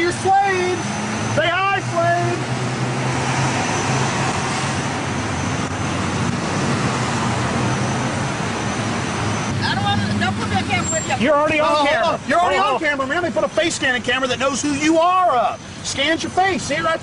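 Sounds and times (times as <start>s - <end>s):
road traffic rushing: 0.0s - 17.0s.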